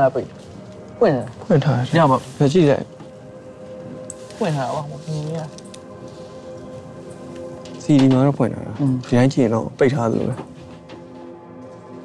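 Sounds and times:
low hum of held tones: 0.0 - 12.0
person speaking: 1.0 - 2.9, 7.8 - 10.4.

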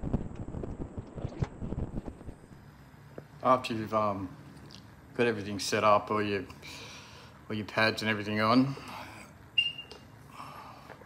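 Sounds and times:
short high-pitched beep: 9.6 - 10.0.

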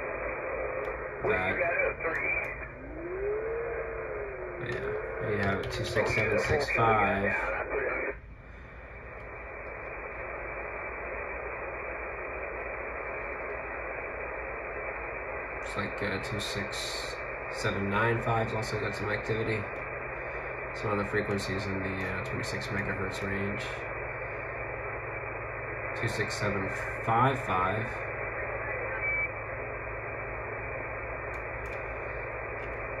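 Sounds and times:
radio static hiss: 0.0 - 33.0
faint clicks: 0.7 - 1.0, 9.1 - 10.3, 12.3 - 13.8, 19.7 - 19.9, 31.2 - 33.0.

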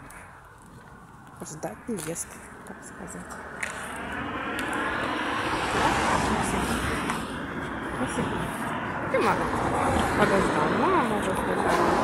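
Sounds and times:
vehicle passing: 0.0 - 12.0.

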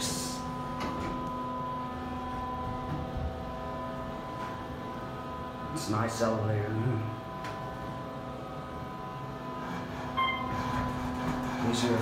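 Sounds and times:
elevator machinery hum: 0.0 - 12.0.

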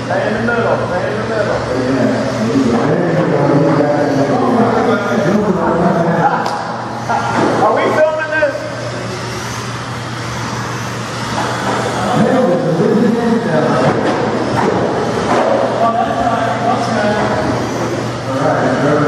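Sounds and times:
electric rc cars racing on carpet: 0.0 - 19.0
voices talking in large room: 0.0 - 19.0.

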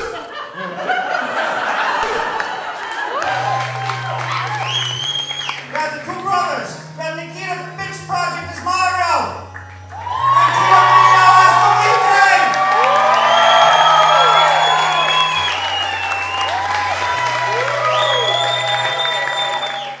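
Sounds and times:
crowd cheering and whooping: 0.3 - 5.8, 9.8 - 20.0
music with long bass notes: 3.2 - 20.0.

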